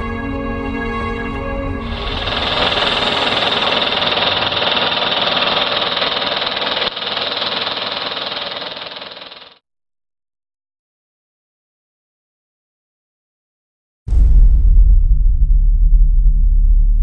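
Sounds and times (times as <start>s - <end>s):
dense mechanical noise: 1.8s - 9.6s.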